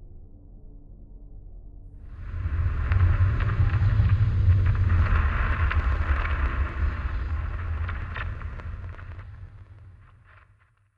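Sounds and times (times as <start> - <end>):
deep rumble: 2.0 - 10.9
hissing crackling noise: 2.0 - 10.9.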